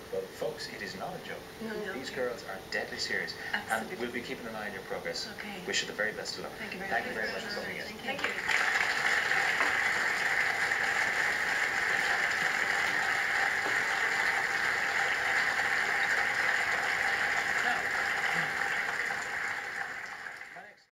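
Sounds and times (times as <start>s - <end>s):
audience applauding: 7.2s - 20.9s.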